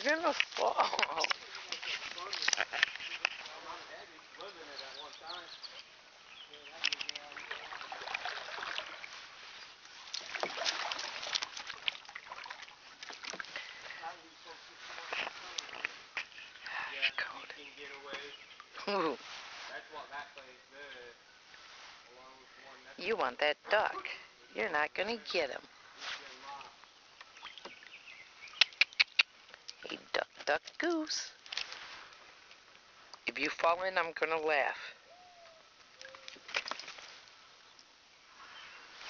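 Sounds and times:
water splashing around kayak: 0:00.0 - 0:16.6, 0:35.9 - 0:37.4
paddle water sounds: 0:00.0 - 0:39.0
small irregular clicks: 0:28.5 - 0:29.8.

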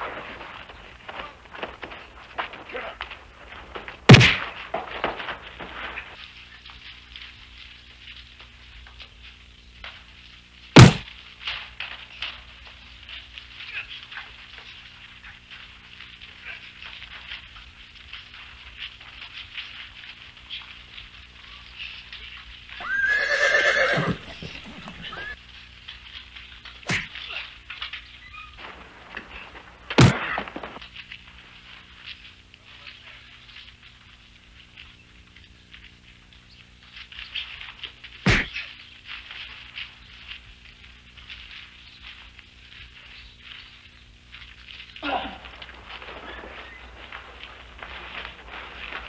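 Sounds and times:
fistfight scuffling and hits: 0:10.8 - 0:11.1, 0:26.9 - 0:27.1, 0:38.3 - 0:38.6
sharp thud of a blow: 0:10.8 - 0:11.1, 0:26.9 - 0:27.1, 0:38.3 - 0:38.6
horse whinnying: 0:22.8 - 0:25.4
low scuffling: 0:23.9 - 0:25.4.

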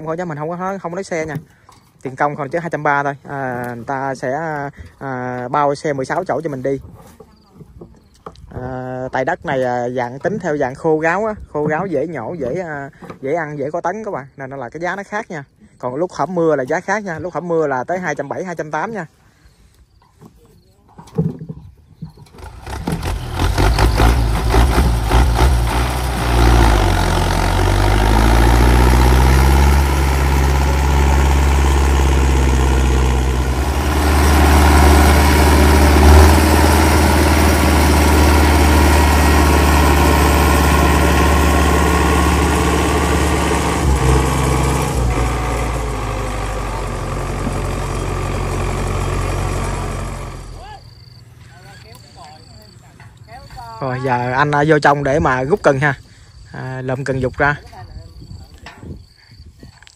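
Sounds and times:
tractor diesel engine revving: 0:22.2 - 0:52.0.

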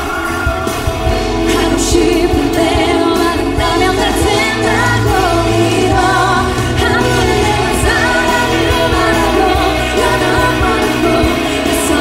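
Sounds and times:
band playing: 0:00.0 - 0:12.0
woman singing a pop song: 0:01.2 - 0:12.0.

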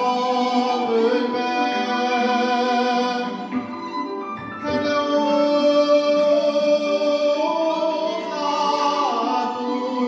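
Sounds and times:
man singing: 0:00.0 - 0:03.6, 0:04.6 - 0:10.0
violin: 0:00.0 - 0:10.0.

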